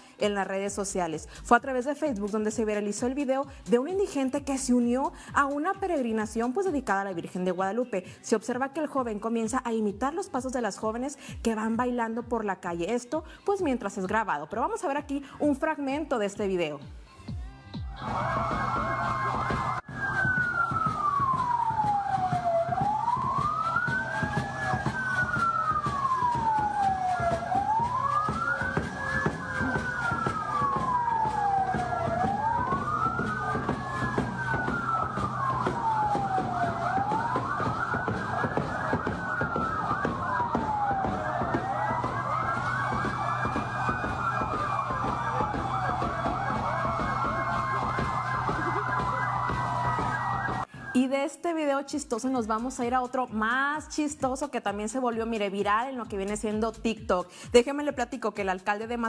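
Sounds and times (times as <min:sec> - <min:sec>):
vehicle siren wailing: 0:18.0 - 0:51.1.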